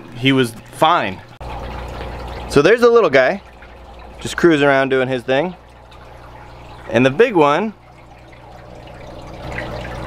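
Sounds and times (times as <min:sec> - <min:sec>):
aquarium filter hum: 0:00.0 - 0:10.0
water trickling and dripping: 0:00.0 - 0:10.0.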